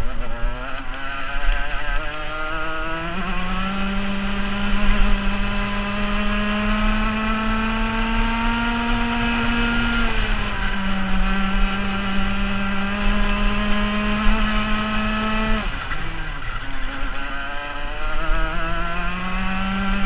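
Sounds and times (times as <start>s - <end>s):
kart engine at full throttle: 0.0s - 20.0s.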